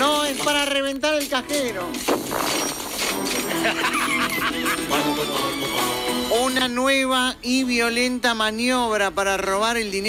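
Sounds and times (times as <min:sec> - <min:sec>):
background music: 0:00.0 - 0:07.8.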